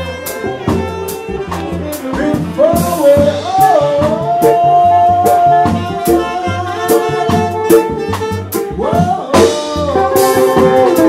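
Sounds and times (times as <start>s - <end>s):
jazz band playing: 0.0s - 11.0s
saxophone: 0.0s - 11.0s.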